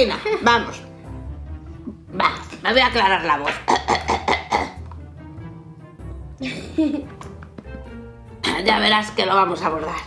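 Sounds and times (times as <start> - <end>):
faint background music: 0.0 - 10.0
person clearing throat: 3.7 - 4.8.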